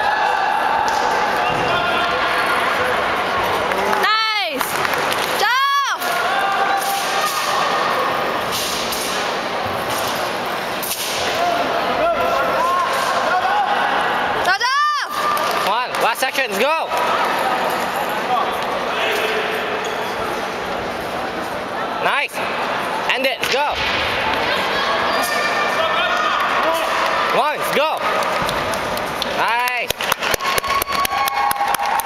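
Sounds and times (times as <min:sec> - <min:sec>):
crowd chatter echoing: 0:00.0 - 0:30.3.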